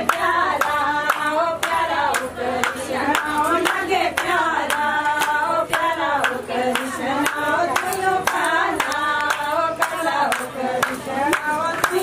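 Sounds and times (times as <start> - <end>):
group singing devotional song: 0.0 - 12.0
rhythmic hand clapping: 0.0 - 12.0.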